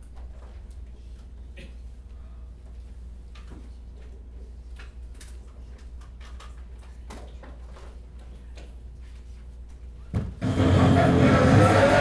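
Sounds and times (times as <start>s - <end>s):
low room hum: 0.0s - 12.0s
music with voices over speakers: 10.4s - 12.0s.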